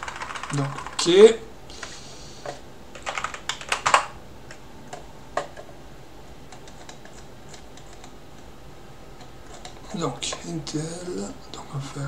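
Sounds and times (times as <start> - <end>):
computer keyboard and mouse clicks: 0.0 - 1.1, 1.8 - 5.7, 6.5 - 8.5, 9.2 - 10.4.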